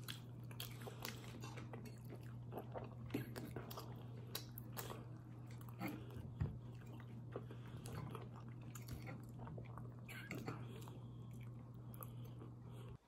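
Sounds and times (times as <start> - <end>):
person chewing food: 0.0 - 13.0
steady low hum: 0.0 - 13.0.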